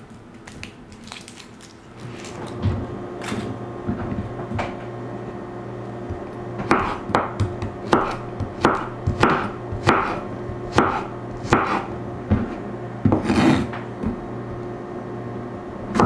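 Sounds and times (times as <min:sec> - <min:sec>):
knife scraping on board: 0:09.1 - 0:11.9, 0:13.1 - 0:13.8
knife slicing on wooden board: 0:13.1 - 0:13.7.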